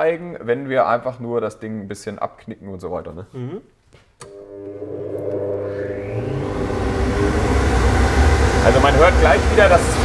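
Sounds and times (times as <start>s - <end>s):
machine whine: 4.3s - 10.0s.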